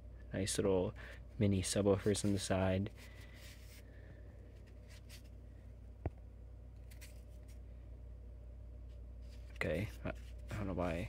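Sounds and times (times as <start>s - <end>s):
steady low hum: 0.0s - 11.0s
speaker rubbing in hand: 1.8s - 3.8s, 4.5s - 5.4s, 8.9s - 11.0s.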